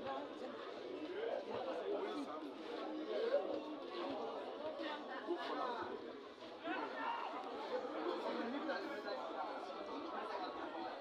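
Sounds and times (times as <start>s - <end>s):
chatter of people: 0.0s - 11.0s.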